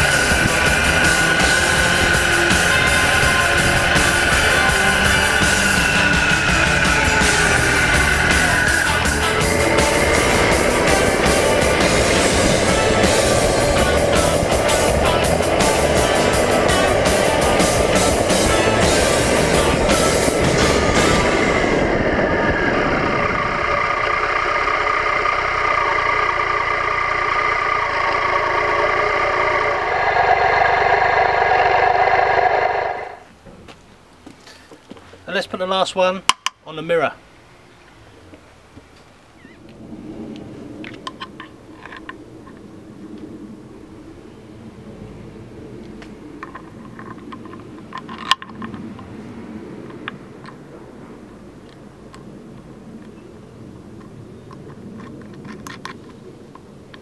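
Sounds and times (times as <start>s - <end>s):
motorcycle engine running: 0.0s - 33.3s
steady low hum: 0.0s - 33.4s.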